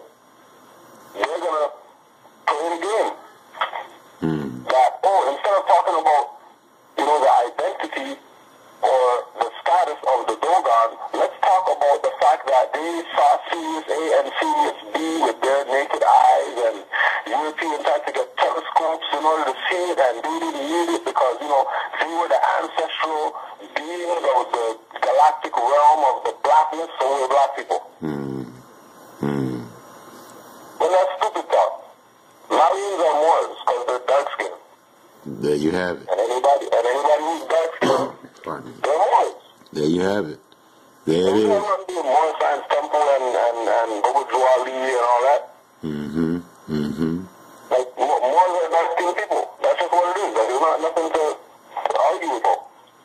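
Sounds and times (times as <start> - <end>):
person talking over radio: 1.2 - 1.8, 2.5 - 6.3, 7.0 - 8.2, 8.8 - 28.6, 30.8 - 31.8, 32.5 - 34.6, 35.3 - 40.3, 41.1 - 52.7.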